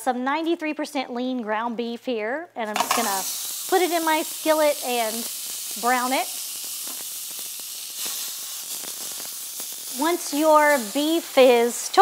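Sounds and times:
meat sizzling in a skillet: 0:02.7 - 0:12.0.

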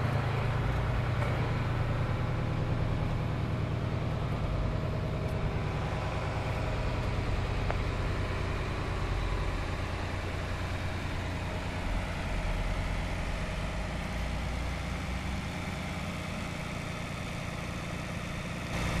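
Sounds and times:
tractor engine running at low revs: 0:00.0 - 0:19.0.

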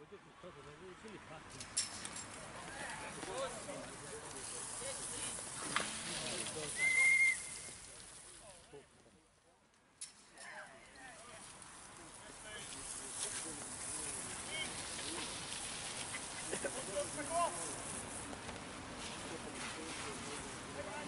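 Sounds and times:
high whistle-like tone: 0:06.8 - 0:07.8.

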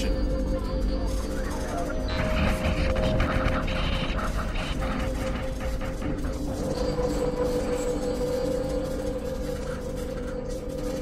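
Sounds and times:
low humming drone: 0:00.0 - 0:11.0.

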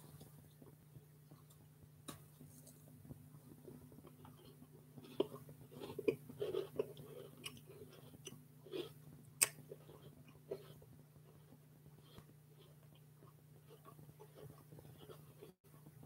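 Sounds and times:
faint steady hum: 0:00.0 - 0:16.0
person chewing crunchy snack: 0:03.6 - 0:15.6.

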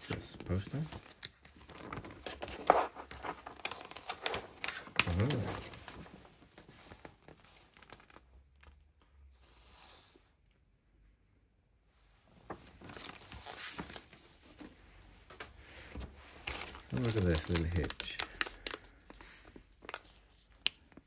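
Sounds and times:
paper poster crackling: 0:00.0 - 0:08.8, 0:12.4 - 0:14.7, 0:16.2 - 0:21.0.

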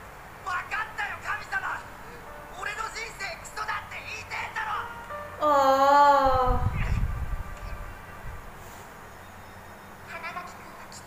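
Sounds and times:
low rumble: 0:05.5 - 0:08.5.

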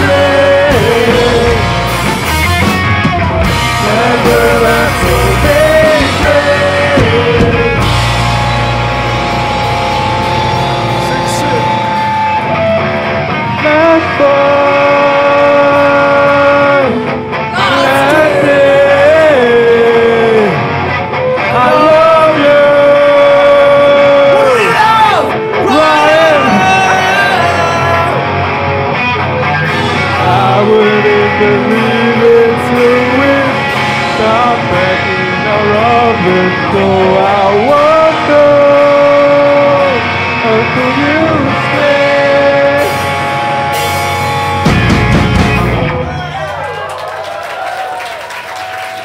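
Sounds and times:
band playing long held note: 0:00.0 - 0:20.9
live rock band music: 0:00.0 - 0:47.0.

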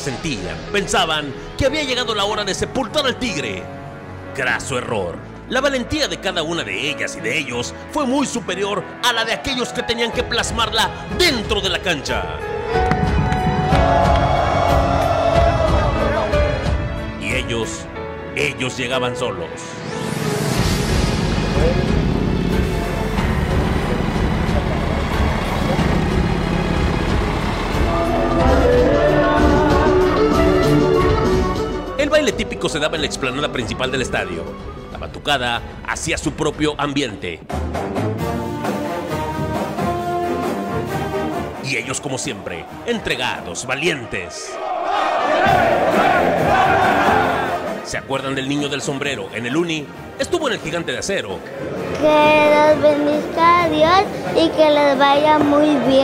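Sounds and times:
crowd chanting: 0:13.6 - 0:16.8, 0:23.7 - 0:31.3, 0:42.4 - 0:47.9, 0:51.5 - 0:56.0
street noise: 0:19.8 - 0:33.2, 0:51.4 - 0:56.0
bus engine rumbling: 0:21.2 - 0:30.6.

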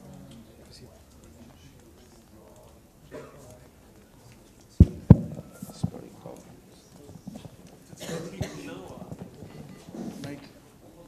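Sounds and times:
murmur of people: 0:00.0 - 0:11.0.

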